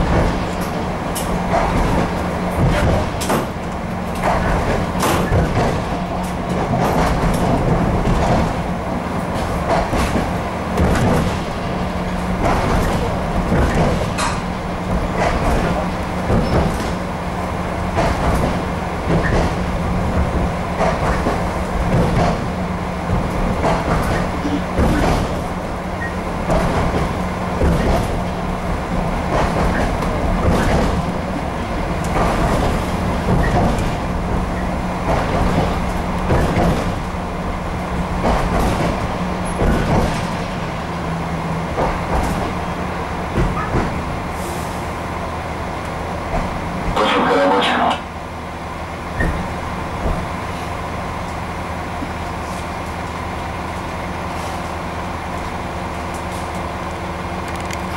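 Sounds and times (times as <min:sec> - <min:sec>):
diesel engine drone: 0:00.0 - 0:57.9
train wheels knocking on rails: 0:00.0 - 0:57.9.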